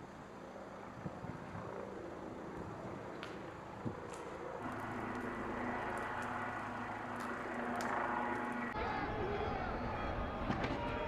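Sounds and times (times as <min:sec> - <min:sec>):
faint sharp crackles: 0:03.0 - 0:08.8
engine humming: 0:04.5 - 0:11.0.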